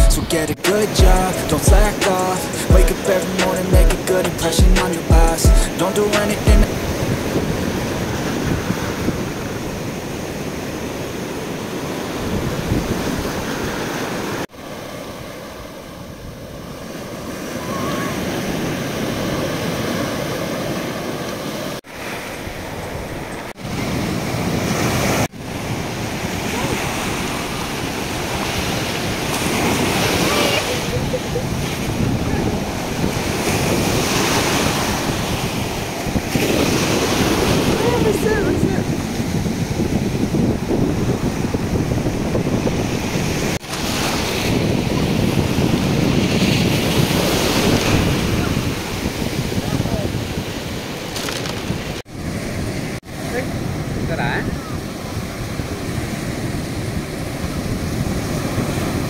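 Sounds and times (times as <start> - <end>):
sea surf breaking: 0.0 - 59.0
wind rumbling on microphone: 6.6 - 14.4, 15.0 - 59.0.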